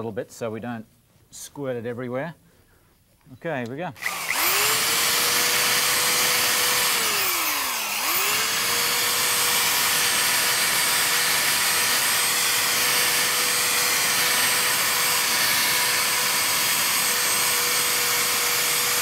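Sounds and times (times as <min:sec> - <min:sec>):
electric drill polishing whine: 0:04.0 - 0:19.0.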